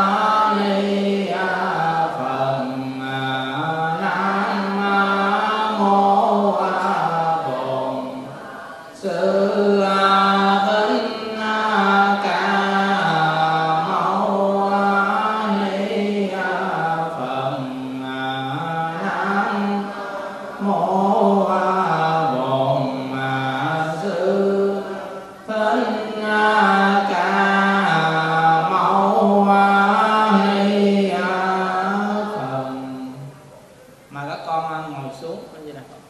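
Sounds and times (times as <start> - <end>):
man chanting into microphone: 0.0 - 33.4.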